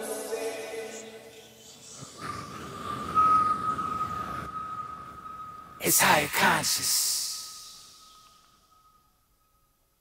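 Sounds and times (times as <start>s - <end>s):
low grainy noise: 0.0s - 10.0s
steady high tone: 1.8s - 9.8s.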